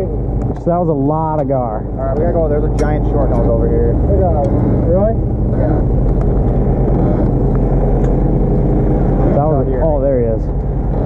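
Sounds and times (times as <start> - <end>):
boat engine droning: 0.0 - 11.0.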